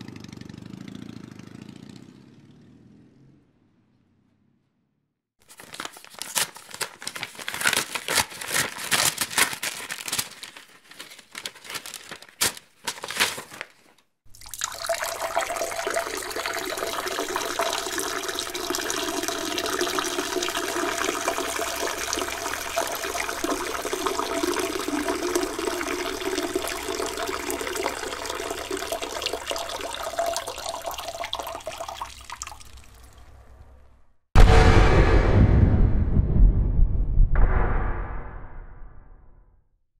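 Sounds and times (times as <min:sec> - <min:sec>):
paper tearing: 0:05.4 - 0:14.0
man urinating into toilet bowl: 0:14.3 - 0:33.3.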